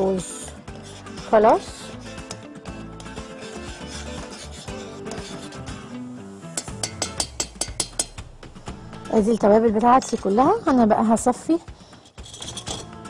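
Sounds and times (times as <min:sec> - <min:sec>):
background music: 0:00.0 - 0:13.0
metal spoon clinking in saucepan: 0:06.6 - 0:08.2, 0:12.0 - 0:12.9.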